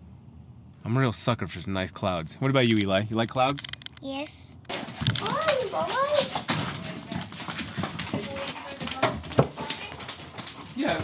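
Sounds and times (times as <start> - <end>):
dog scuffling: 4.7 - 11.0
knocks and rustling: 4.7 - 11.0.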